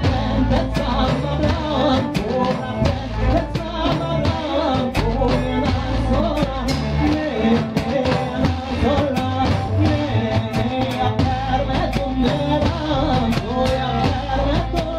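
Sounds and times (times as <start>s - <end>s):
drum kit: 0.0s - 14.9s
electric guitar: 0.0s - 14.9s
large hand-struck drum: 0.0s - 14.9s
man singing into a microphone: 0.0s - 14.9s
upright double bass: 0.0s - 14.9s.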